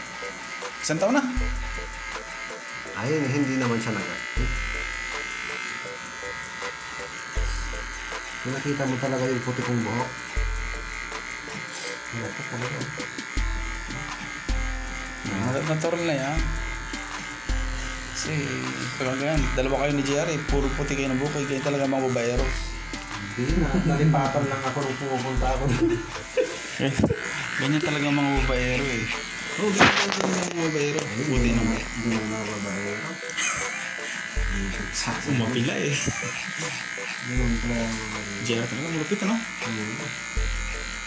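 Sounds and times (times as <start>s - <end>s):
background music: 0.0s - 41.0s
electric hair clippers buzzing: 0.0s - 41.0s
person talking: 26.8s - 33.3s.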